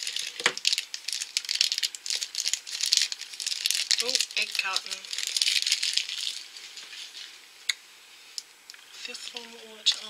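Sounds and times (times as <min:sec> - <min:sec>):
plastic wrapper rustling: 0:00.0 - 0:07.5, 0:08.3 - 0:10.0.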